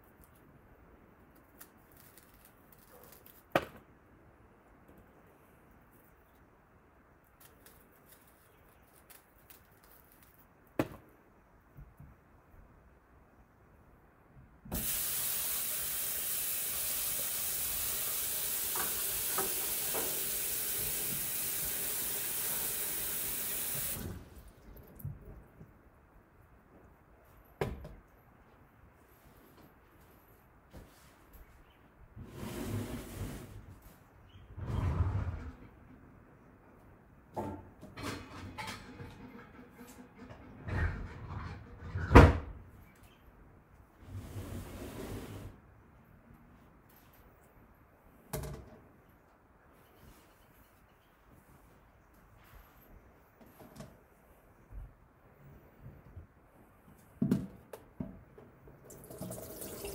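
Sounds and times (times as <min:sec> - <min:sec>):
tap water running into a bowl: 0:14.8 - 0:24.2, 0:58.8 - 0:59.9.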